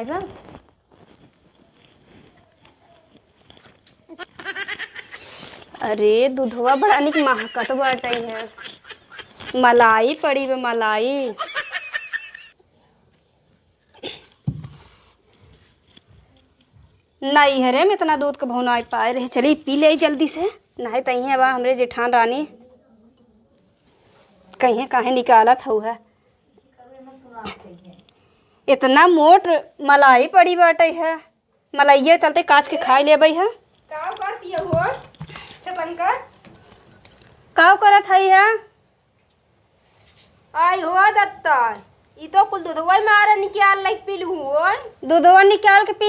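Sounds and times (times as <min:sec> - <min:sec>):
glass bangles jingling: 0:00.0 - 0:12.6, 0:14.0 - 0:28.1, 0:32.1 - 0:38.0.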